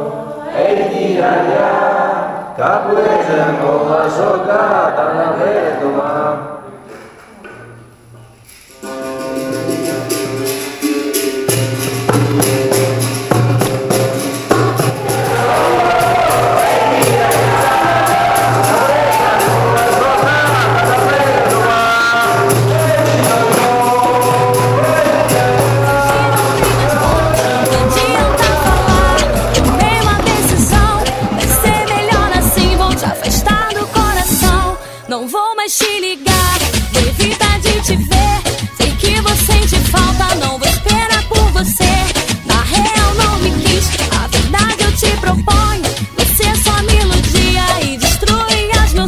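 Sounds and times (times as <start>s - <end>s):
group singing: 0.0s - 6.5s, 14.8s - 35.2s
hand drum: 8.7s - 20.0s, 22.2s - 34.8s
rhythmic hand clapping: 8.8s - 34.7s
person singing: 15.1s - 49.0s.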